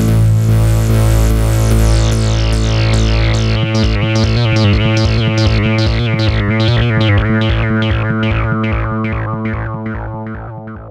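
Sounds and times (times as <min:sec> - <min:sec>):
low synthesizer drone: 0:00.0 - 0:10.9
synthesizer plucky notes: 0:00.0 - 0:10.9.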